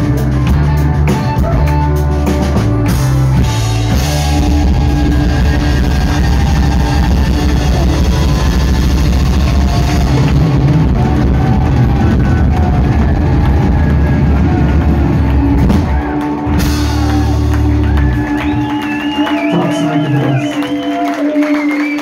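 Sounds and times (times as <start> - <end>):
upright bass: 0.0 - 20.7
drum kit: 0.0 - 22.0
electric guitars: 0.0 - 22.0.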